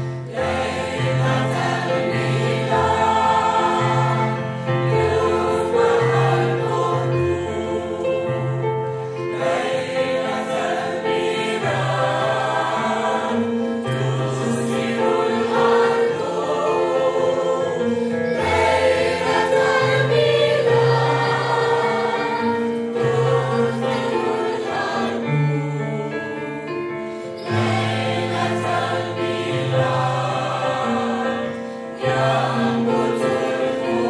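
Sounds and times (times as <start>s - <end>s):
mixed choir singing: 0.0s - 34.0s
piano accompaniment: 0.0s - 34.0s.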